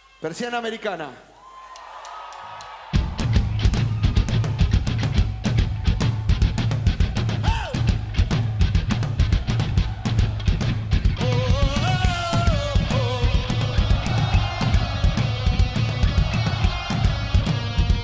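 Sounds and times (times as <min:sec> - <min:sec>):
fast busy drumming: 0:02.9 - 0:18.0
rock band playing live: 0:03.0 - 0:18.0.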